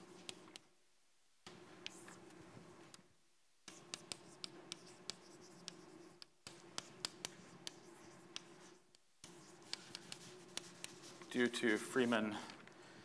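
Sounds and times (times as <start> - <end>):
chalk tapping on board: 1.5 - 2.1, 3.7 - 11.4
chalk scratching on blackboard: 1.5 - 2.4, 3.7 - 12.2.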